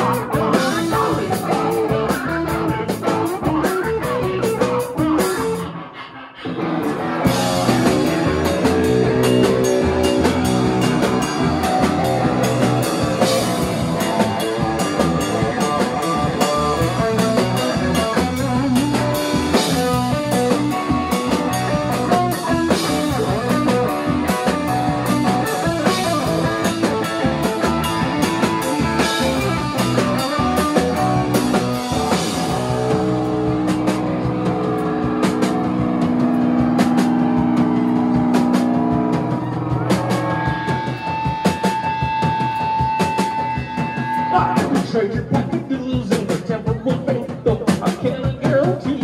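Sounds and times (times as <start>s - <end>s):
bass guitar: 0.0s - 49.0s
drum kit: 0.0s - 49.0s
electric guitar: 0.0s - 49.0s.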